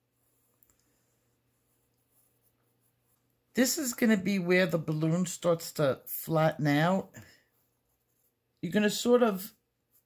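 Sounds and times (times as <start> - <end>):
pencil scratching on paper: 0.0 - 5.0, 6.6 - 8.6.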